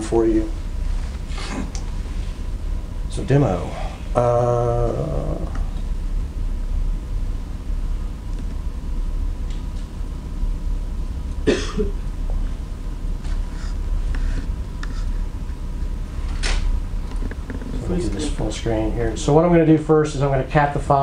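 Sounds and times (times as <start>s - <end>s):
low room hum: 0.0s - 21.0s
person coughing: 11.4s - 12.0s.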